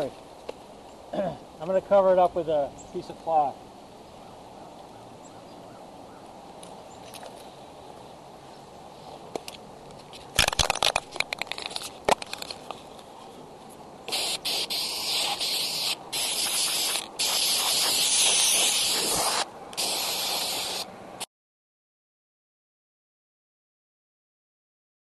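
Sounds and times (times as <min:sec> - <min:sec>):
spray can rattling: 0:10.4 - 0:12.7, 0:14.1 - 0:20.8
aerosol spray can hissing: 0:14.1 - 0:20.9.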